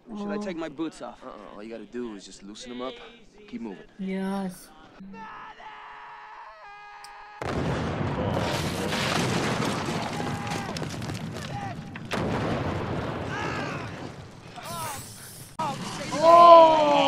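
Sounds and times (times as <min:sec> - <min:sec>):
man shouting: 0:05.1 - 0:07.4
men shouting: 0:05.1 - 0:07.5, 0:16.1 - 0:17.0
artillery shell explosions: 0:07.4 - 0:15.0.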